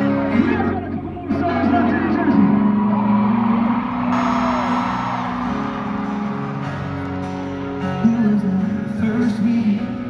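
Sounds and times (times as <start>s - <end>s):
acoustic guitar chords through pa: 4.2s - 10.0s.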